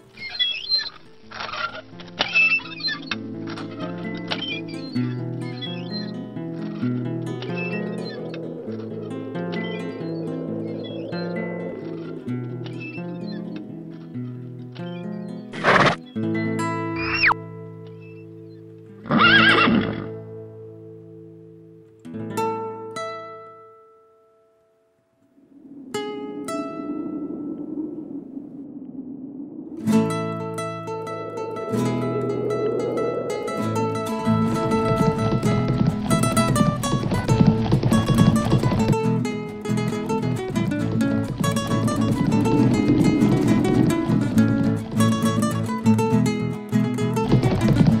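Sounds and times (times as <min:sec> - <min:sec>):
folk guitar tune: 0:00.0 - 0:24.7, 0:29.8 - 0:48.0
horse whinnying: 0:00.2 - 0:03.2, 0:19.0 - 0:20.2.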